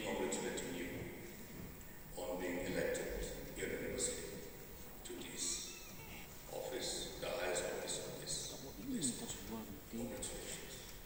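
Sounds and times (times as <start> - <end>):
man speaking: 2.1 - 10.9.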